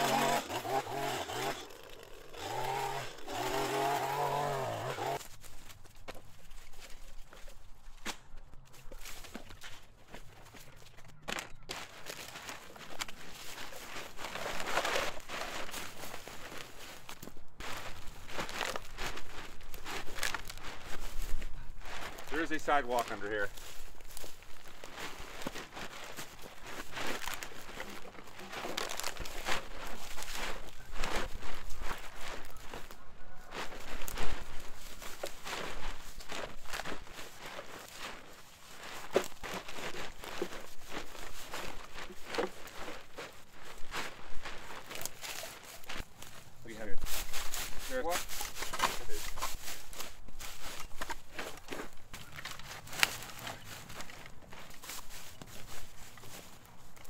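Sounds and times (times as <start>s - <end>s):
dry leaves crunching and rustling: 0.0s - 57.0s
footsteps in dry leaves: 0.0s - 57.0s
plastic trash bag crinkling: 11.7s - 57.0s.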